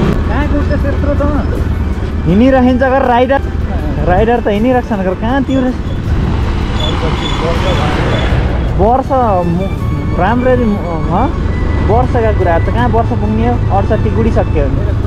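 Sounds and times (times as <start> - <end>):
motorcycle engine: 0.0 - 9.4.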